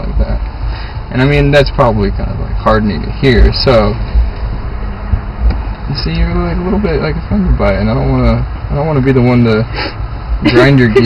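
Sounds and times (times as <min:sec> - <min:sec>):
car cabin rumble: 0:01.2 - 0:09.6
soft low thumps: 0:03.1 - 0:07.7.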